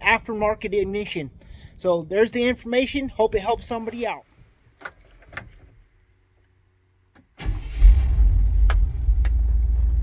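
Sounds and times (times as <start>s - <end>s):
pickup engine starting and idling: 7.4s - 10.0s.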